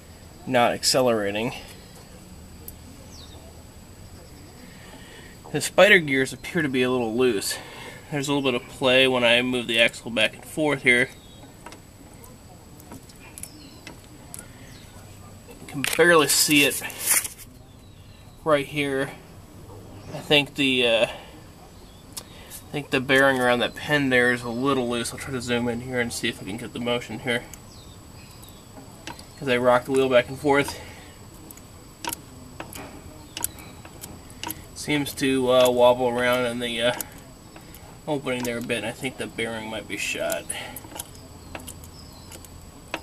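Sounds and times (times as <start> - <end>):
faint gear clicks: 10.4 - 18.2, 26.3 - 43.0.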